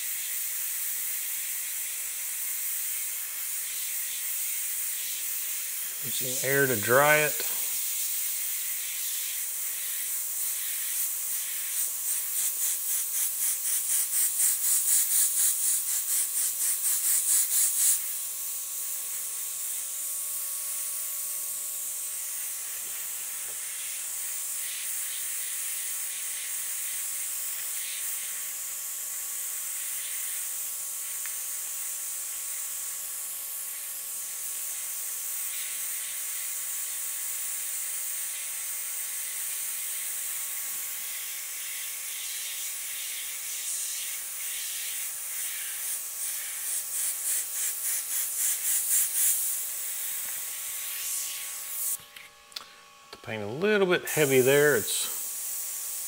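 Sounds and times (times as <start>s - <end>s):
airbrush air hiss: 0.0s - 52.1s, 53.6s - 56.0s.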